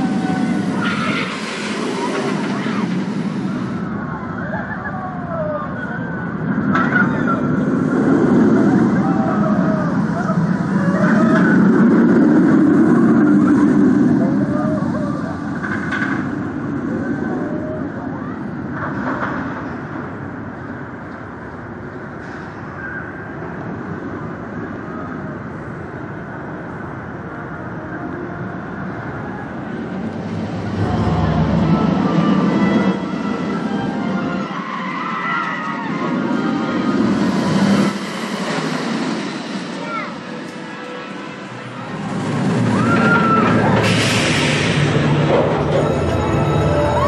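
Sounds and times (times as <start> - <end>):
faint voices: 0.0 - 21.1, 22.5 - 44.0
roller coaster train rumbling: 0.0 - 47.0.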